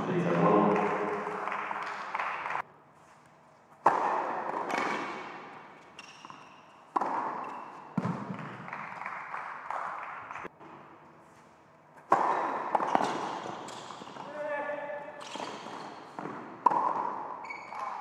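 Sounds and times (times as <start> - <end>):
tennis ball struck by racket: 3.8 - 8.7, 12.0 - 14.3, 15.2 - 17.2
shoe squeak: 5.9 - 6.8, 7.4 - 7.9, 12.8 - 14.2, 15.2 - 16.2, 17.4 - 18.0.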